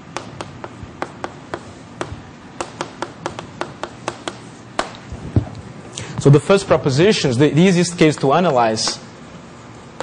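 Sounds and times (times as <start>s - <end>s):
chalk tapping on blackboard: 0.2s - 5.0s.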